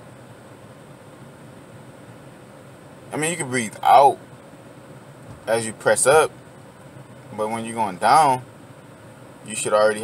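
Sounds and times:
car cabin background hiss: 0.0s - 10.0s.

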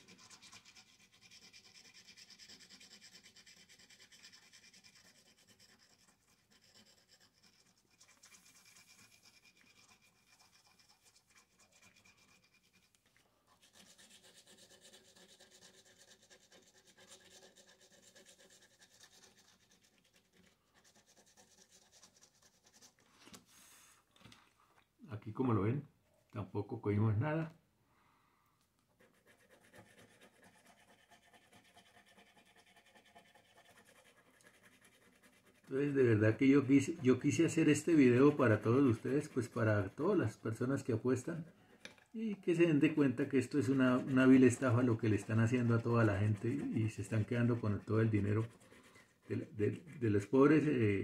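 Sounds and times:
scratching lottery ticket: 0.0s - 23.6s, 29.0s - 51.0s.

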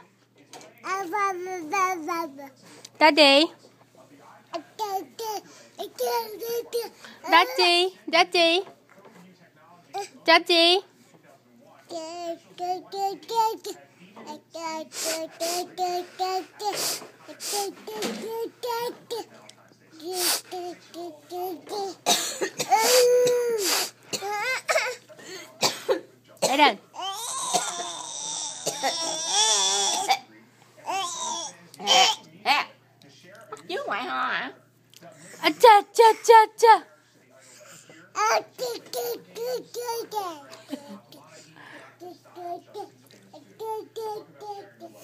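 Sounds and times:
toddler babbling: 4.8s - 7.6s, 11.9s - 14.8s, 43.6s - 45.0s.

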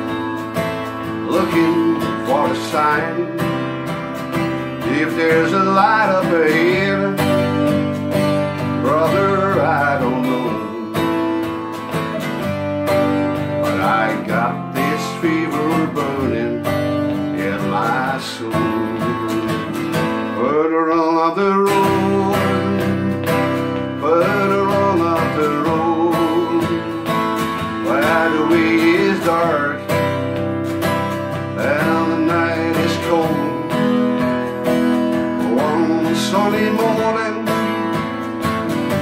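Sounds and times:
man singing: 0.0s - 11.9s, 12.7s - 39.0s
twelve-string acoustic guitar strumming: 0.0s - 39.0s.

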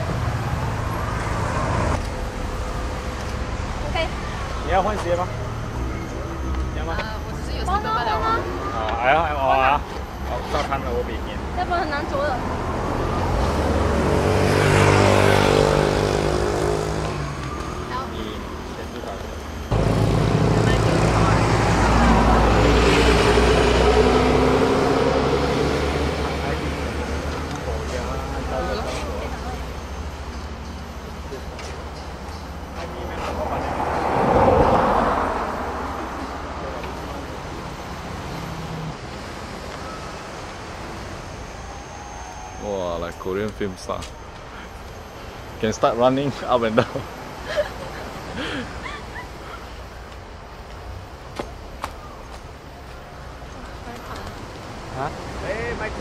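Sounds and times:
cars passing close by: 0.0s - 56.0s.

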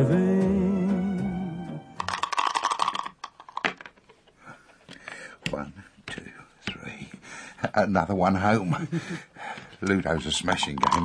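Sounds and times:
dice and counters clicking on board: 2.0s - 4.2s, 9.9s - 11.0s.

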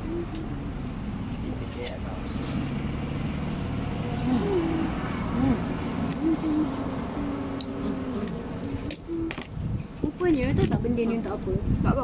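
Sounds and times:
vehicle engine running: 0.0s - 8.9s
faint voices: 4.0s - 9.3s.

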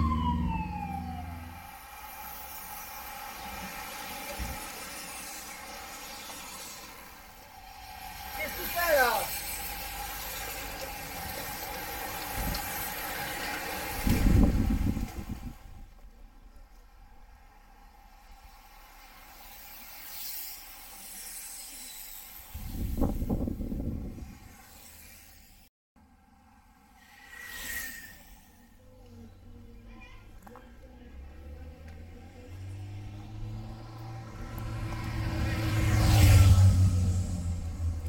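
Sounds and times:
low rumbling: 0.0s - 1.9s, 31.0s - 38.0s
bicycle tyres hissing: 1.6s - 15.9s, 17.1s - 25.7s, 26.8s - 28.8s.

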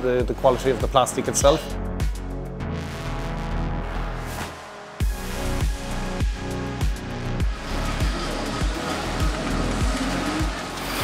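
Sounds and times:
electronic music with beat: 0.0s - 11.0s.

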